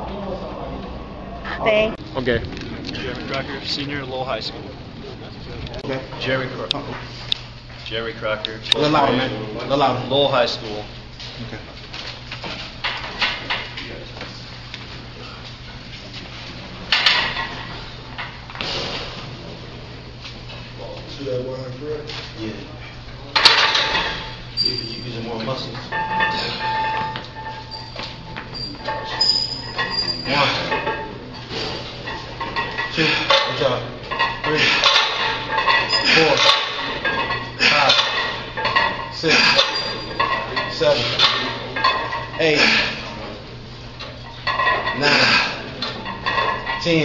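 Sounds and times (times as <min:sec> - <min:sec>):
weight plates clinking: 0:23.4 - 0:43.0, 0:44.0 - 0:47.0
barbell clanking in metal rack: 0:25.9 - 0:31.2.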